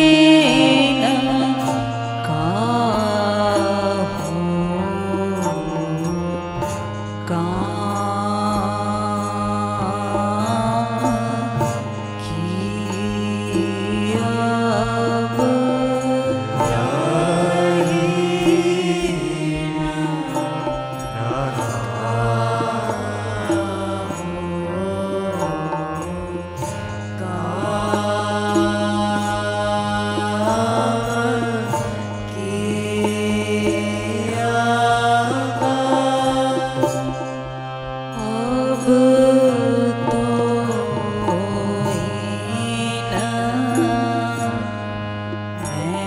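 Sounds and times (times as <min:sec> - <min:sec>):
steady held drone: 0:00.0 - 0:46.0
voices singing devotional song: 0:00.0 - 0:46.0.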